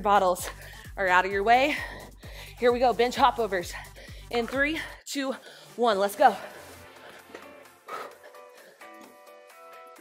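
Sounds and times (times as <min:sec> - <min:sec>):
quiet workout music: 0:00.0 - 0:10.0.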